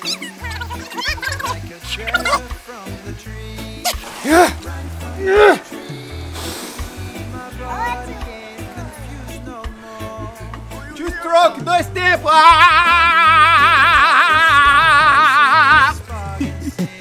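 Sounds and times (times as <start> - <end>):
music with steady bass line: 0.0 - 17.0
water splash: 0.9 - 10.1
man yelling: 1.9 - 2.6, 3.9 - 6.4, 7.2 - 9.3, 10.8 - 16.1.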